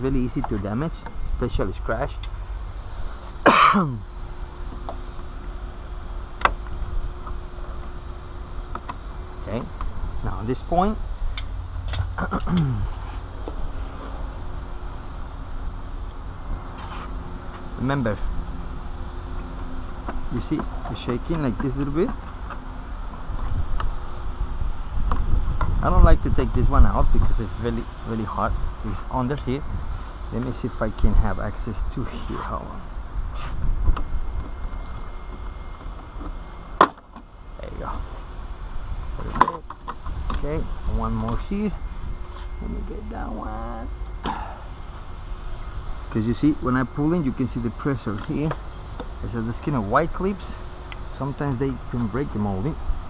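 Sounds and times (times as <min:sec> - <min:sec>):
steady low rumble: 0:00.0 - 0:53.0.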